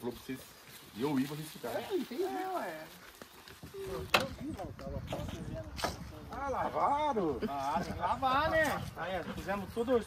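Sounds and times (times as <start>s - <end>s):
people talking quietly: 0.0s - 10.0s.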